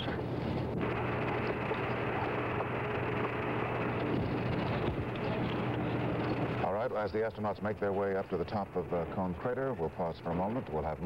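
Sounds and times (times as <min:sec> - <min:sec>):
low hum: 0:00.0 - 0:11.0
radio hiss: 0:00.0 - 0:11.0.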